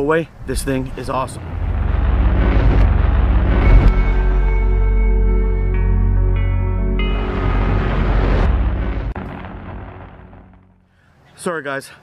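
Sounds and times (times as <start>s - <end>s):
deep rumbling boom: 0.6s - 10.9s.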